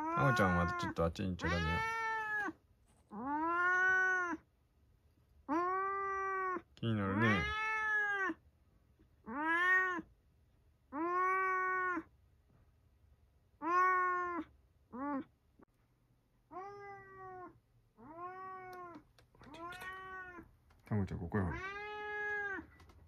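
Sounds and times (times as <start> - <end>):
cat meowing: 0.0 - 4.4, 5.5 - 8.4, 9.2 - 10.1, 10.9 - 12.1, 13.6 - 15.3, 16.5 - 20.5, 21.4 - 22.9.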